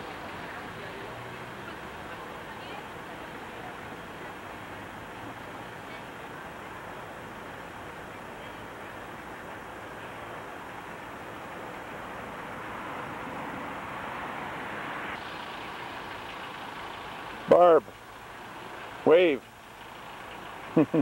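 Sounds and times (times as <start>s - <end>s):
outdoor background hiss: 0.0s - 21.0s.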